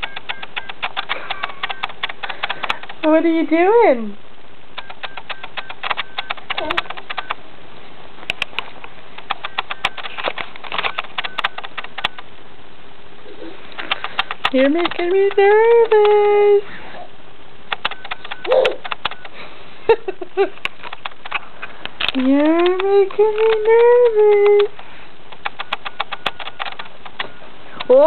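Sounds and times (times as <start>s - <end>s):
rapid light clicks: 0.0s - 3.2s, 4.7s - 7.4s, 8.2s - 12.3s, 13.7s - 16.2s, 17.7s - 19.5s, 20.1s - 28.0s
baby cooing: 18.5s - 18.8s.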